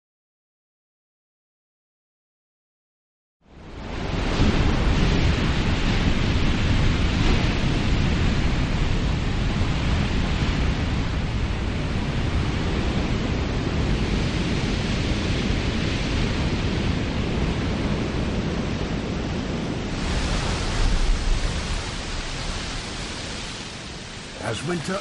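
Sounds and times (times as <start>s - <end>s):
ocean surf breaking: 3.6s - 25.0s.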